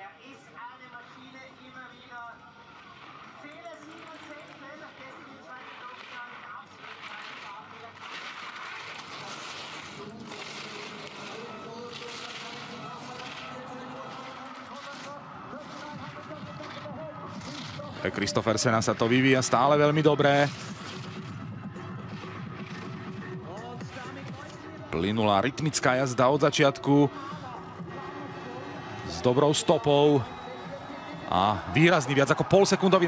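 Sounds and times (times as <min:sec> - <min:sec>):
crowd noise: 0:00.0 - 0:33.0.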